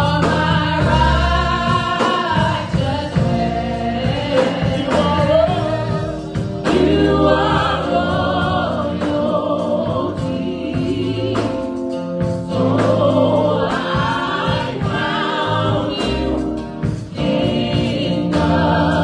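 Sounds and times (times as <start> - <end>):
group singing over loudspeakers: 0.0 - 19.0.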